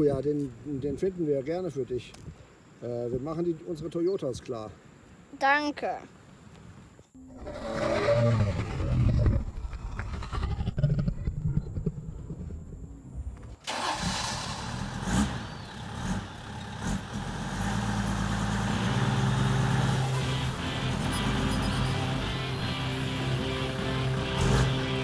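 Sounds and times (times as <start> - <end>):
vehicle engine starting: 11.6 - 25.0.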